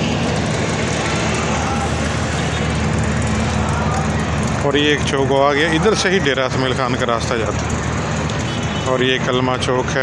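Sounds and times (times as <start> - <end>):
road and wind noise: 0.0 - 10.0
small motorcycle engine running: 0.0 - 10.0.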